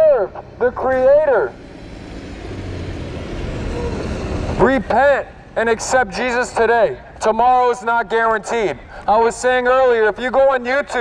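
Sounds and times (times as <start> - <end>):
bus driving by: 0.0 - 11.0.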